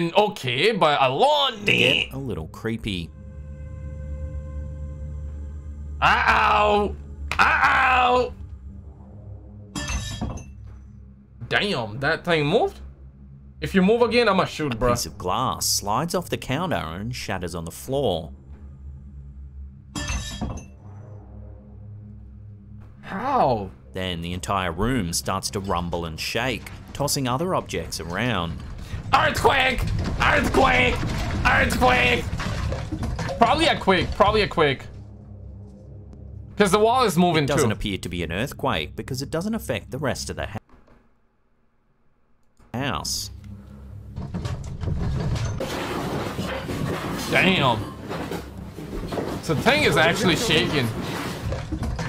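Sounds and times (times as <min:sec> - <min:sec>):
low rumble: 0:02.1 - 0:40.6.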